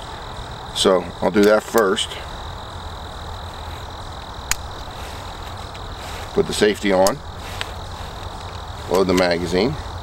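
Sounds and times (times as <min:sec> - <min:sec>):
low background rumble: 0:02.1 - 0:10.0
handling ticks: 0:02.6 - 0:10.0
pistol barrel snapping shut: 0:04.5 - 0:04.7.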